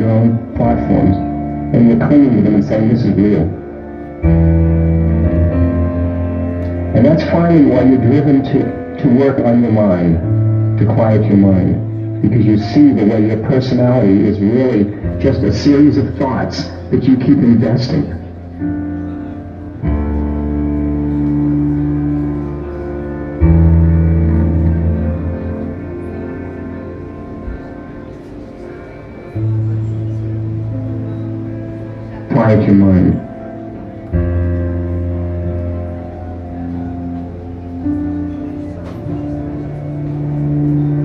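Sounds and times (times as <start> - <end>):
sustained synthesizer chord: 0.0 - 41.0
deep bass note: 13.7 - 28.0.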